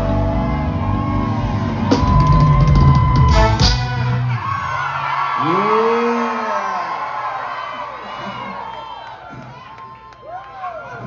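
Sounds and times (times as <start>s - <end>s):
live band music: 0.0s - 4.8s.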